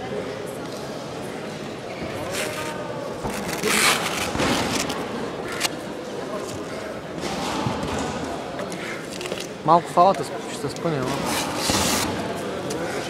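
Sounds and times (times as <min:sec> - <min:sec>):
indistinct voices and chatter: 0:00.0 - 0:13.0.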